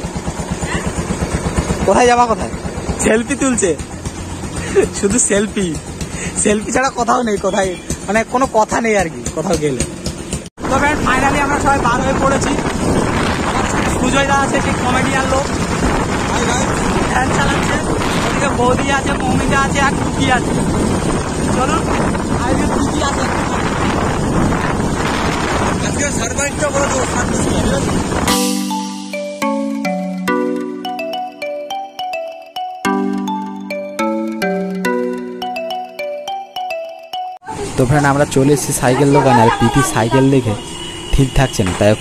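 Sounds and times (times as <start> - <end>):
engine idling: 0.0 - 28.2
vehicle rumble: 0.0 - 28.4
wind on microphone: 10.6 - 28.3
voices: 37.5 - 42.0.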